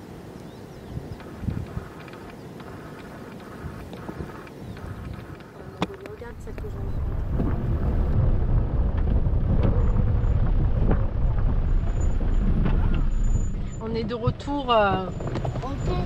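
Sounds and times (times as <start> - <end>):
engine and tyres rumbling: 0.5 - 16.0.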